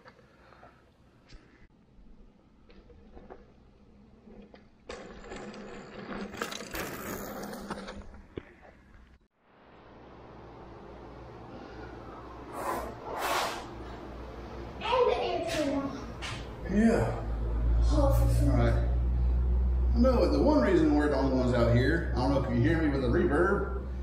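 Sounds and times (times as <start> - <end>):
air conditioning hiss: 9.5 - 22.9.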